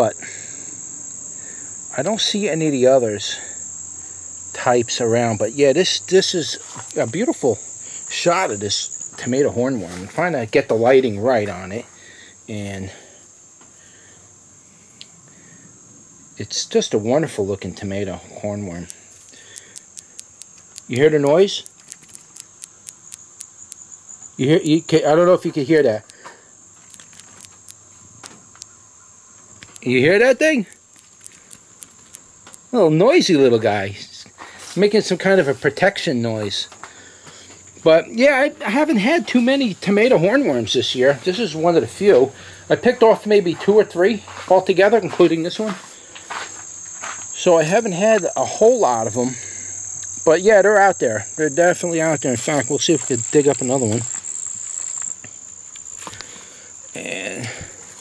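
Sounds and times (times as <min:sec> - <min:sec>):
insects trilling: 0:00.0 - 0:58.0
caterpillar clicking mandibles: 0:06.0 - 0:07.4, 0:18.3 - 0:26.2, 0:26.8 - 0:28.8, 0:29.4 - 0:32.8, 0:49.9 - 0:57.4.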